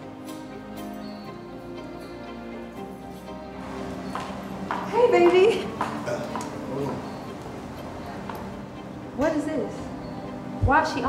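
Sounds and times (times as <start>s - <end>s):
background music: 0.0s - 11.0s
footsteps on a hard floor: 3.6s - 7.5s.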